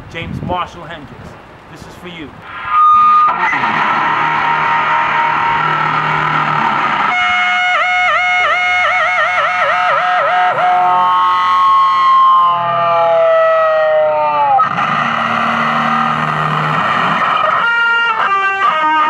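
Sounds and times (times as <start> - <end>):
distorted electric guitar: 2.4 - 19.0.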